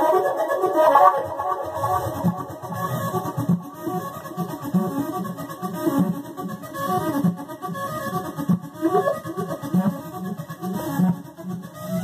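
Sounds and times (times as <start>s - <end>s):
synthesizer notes: 0.0s - 3.8s.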